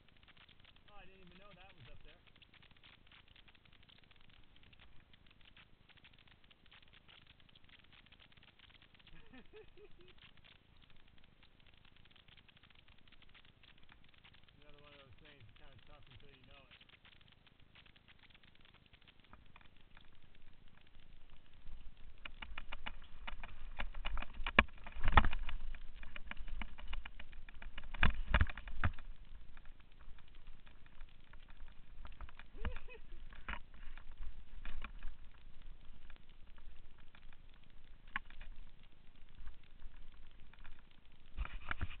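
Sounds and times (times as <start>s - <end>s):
bike tyre and ride noise: 0.0s - 42.0s.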